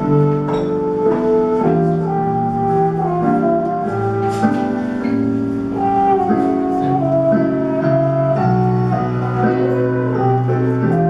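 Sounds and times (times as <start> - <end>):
muted trumpet: 0.0 - 5.0, 5.7 - 11.0
jazz combo playing slow ballad: 0.0 - 11.0.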